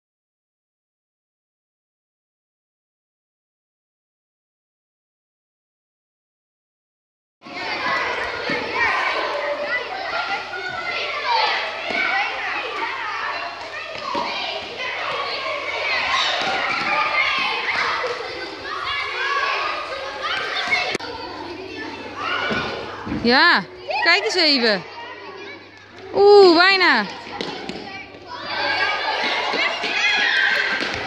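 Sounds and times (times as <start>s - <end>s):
children calling and chattering: 7.4s - 31.0s.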